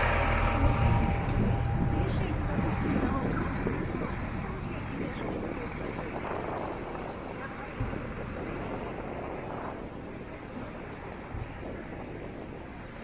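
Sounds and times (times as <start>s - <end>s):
indistinct voices of passers-by: 0.0s - 13.0s
traffic hum: 0.0s - 13.0s.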